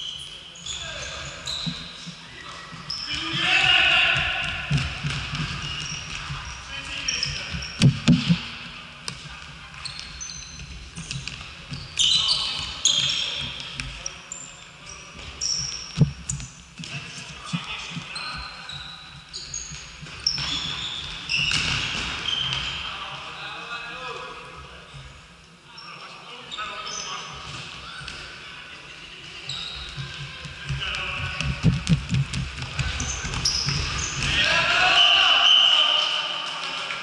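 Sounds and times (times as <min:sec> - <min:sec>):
sneakers squeaking on floor: 0:00.0 - 0:08.4, 0:09.1 - 0:23.0, 0:25.7 - 0:28.4, 0:29.2 - 0:36.0
players shouting: 0:34.2 - 0:36.4.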